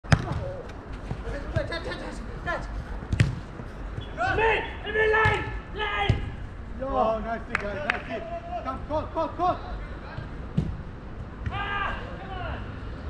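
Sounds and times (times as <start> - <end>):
football kicked hard: 0.1 - 0.6, 3.1 - 3.4
players shouting: 4.0 - 6.4, 11.4 - 12.7.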